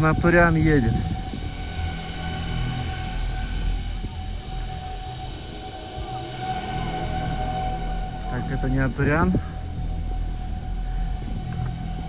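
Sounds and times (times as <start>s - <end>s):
snow cannon fan whine: 0.0s - 12.0s.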